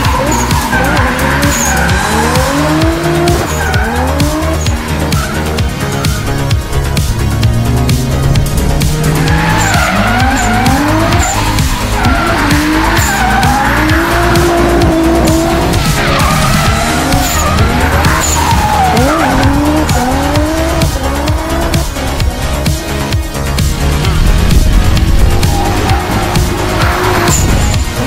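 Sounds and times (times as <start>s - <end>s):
background music with steady beat: 0.0s - 28.0s
car engine revving: 0.0s - 28.0s
tyres skidding: 0.0s - 28.0s.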